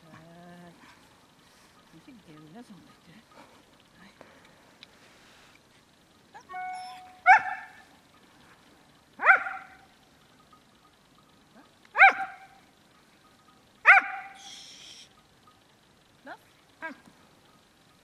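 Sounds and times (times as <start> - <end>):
dog whining: 6.3 - 7.8
dog barking sharply: 7.2 - 7.8, 9.2 - 9.8, 12.0 - 12.5, 13.8 - 14.4.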